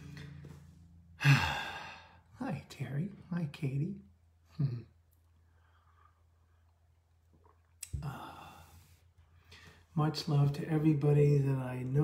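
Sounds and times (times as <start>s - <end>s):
man sighing: 1.2s - 2.3s, 7.9s - 8.8s.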